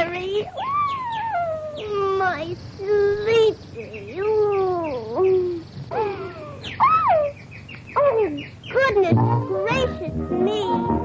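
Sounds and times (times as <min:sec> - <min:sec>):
cartoon canary chirping: 0:00.1 - 0:11.0.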